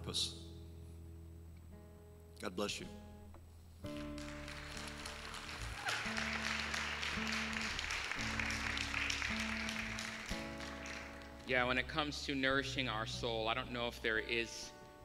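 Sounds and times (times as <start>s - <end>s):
congregation applauding: 3.9s - 11.9s
church band playing slow chords: 4.2s - 13.0s.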